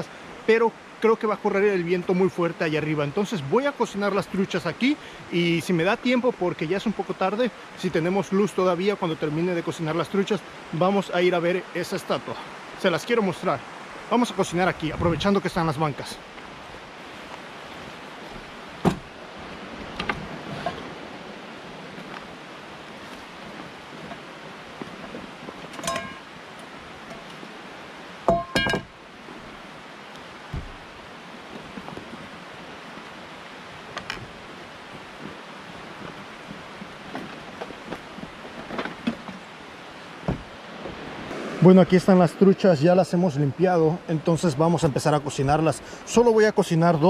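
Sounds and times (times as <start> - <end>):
river rushing: 0.0 - 47.0
cookware clinking on wooden table: 25.8 - 26.2, 28.3 - 28.9.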